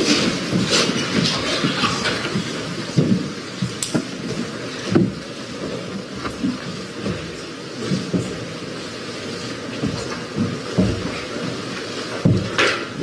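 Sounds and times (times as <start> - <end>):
chairs moving: 0.0 - 13.0
shuffling feet: 0.0 - 13.0.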